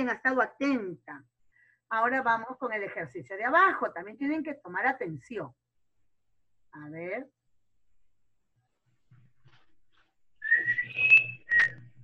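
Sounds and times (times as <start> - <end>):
person whistling: 10.4 - 12.0.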